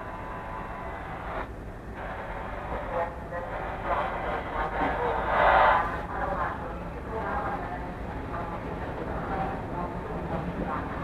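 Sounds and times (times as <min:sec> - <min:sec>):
train rumbling: 0:00.0 - 0:11.0.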